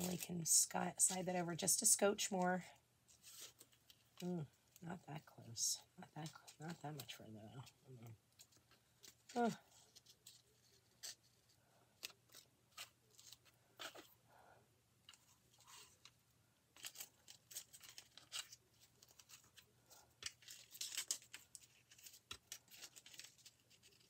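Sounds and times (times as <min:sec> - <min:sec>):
plastic sheet crinkling: 0:00.0 - 0:01.9, 0:16.8 - 0:24.0.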